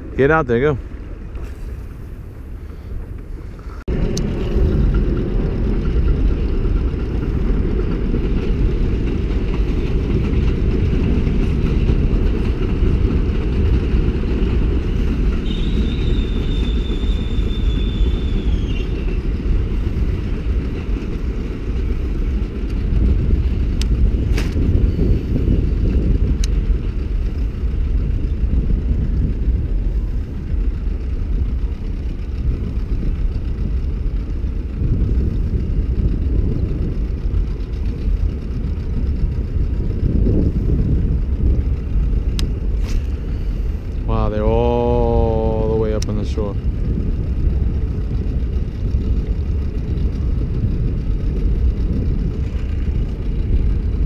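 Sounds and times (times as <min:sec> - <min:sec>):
steady low rumble: 0:00.0 - 0:54.0
thin high whistle: 0:15.4 - 0:19.1.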